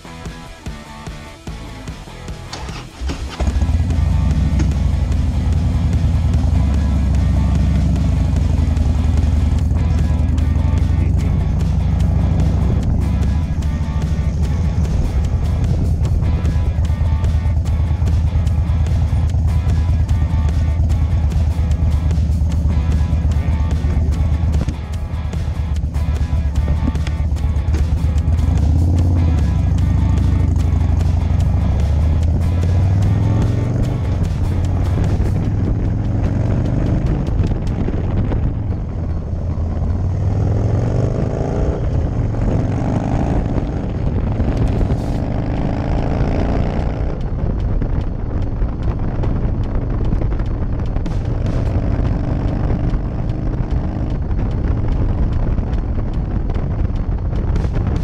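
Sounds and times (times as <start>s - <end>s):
motorcycle engine accelerating: 0.0s - 58.0s
wind rushing over microphone: 12.2s - 21.7s, 31.1s - 58.0s.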